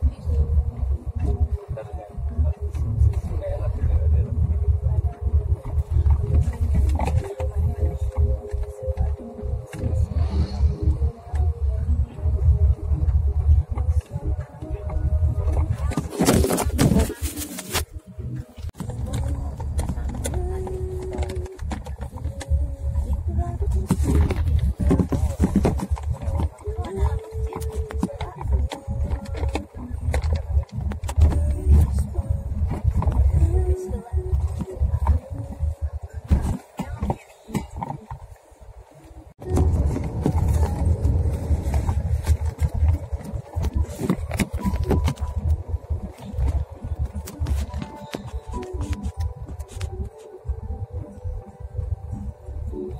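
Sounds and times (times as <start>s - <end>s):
car engine and tyres rumbling: 0.0s - 52.9s.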